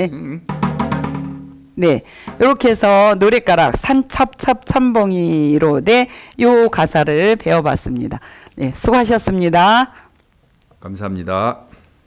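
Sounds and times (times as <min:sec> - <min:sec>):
hourglass drum strokes: 0:00.5 - 0:02.7.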